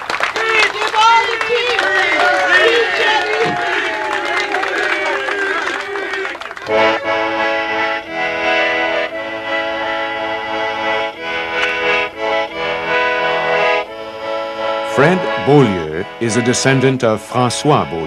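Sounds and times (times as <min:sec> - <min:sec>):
accordion playing a tune: 0:00.0 - 0:18.0
crowd of voices: 0:00.0 - 0:18.0.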